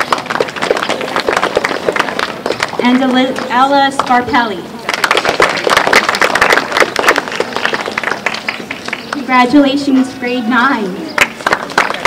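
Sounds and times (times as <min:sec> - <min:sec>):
audience clapping: 0:00.0 - 0:02.8, 0:04.9 - 0:09.3, 0:11.2 - 0:12.0.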